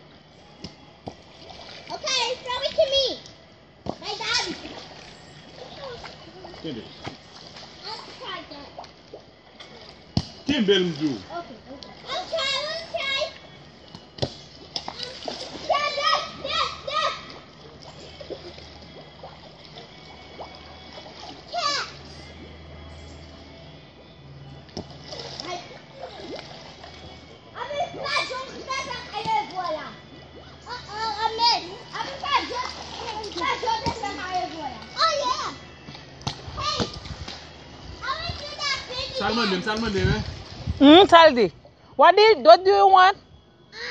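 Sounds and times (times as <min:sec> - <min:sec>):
water splashing: 0:00.6 - 0:23.7, 0:24.7 - 0:41.5
children shrieking and calling out: 0:15.0 - 0:17.5.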